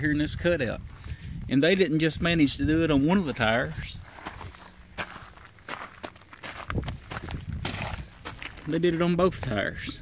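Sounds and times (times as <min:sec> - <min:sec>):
footsteps on gravel: 0:03.2 - 0:10.0.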